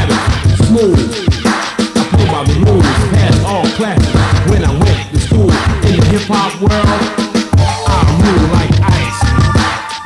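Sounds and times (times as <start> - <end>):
rapping over a drum beat: 0.0 - 10.0
steady bassline: 0.0 - 10.0.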